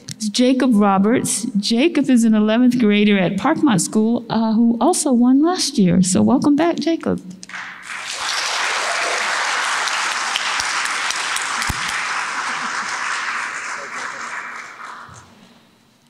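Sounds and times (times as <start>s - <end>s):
audience applauding: 7.5s - 15.6s.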